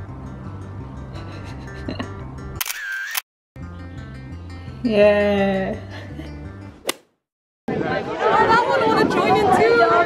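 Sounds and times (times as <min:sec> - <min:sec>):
phone camera shutter: 0:02.6 - 0:03.2.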